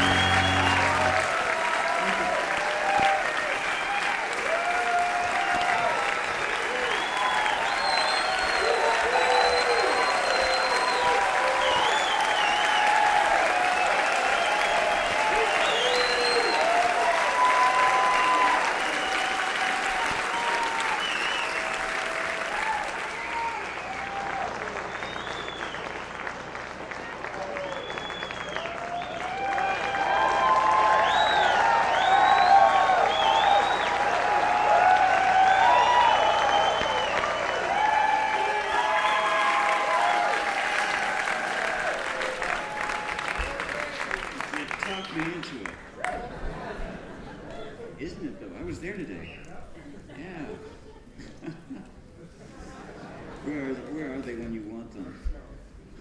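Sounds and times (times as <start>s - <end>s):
piano chord: 0.0s - 1.4s
cheering shouts: 0.0s - 24.8s, 28.6s - 44.6s
audience applause: 0.0s - 47.9s.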